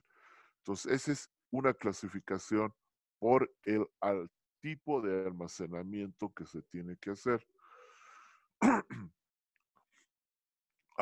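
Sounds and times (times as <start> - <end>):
faint breath: 0.0 - 0.6, 7.6 - 8.5
man clearing his throat: 8.6 - 9.1.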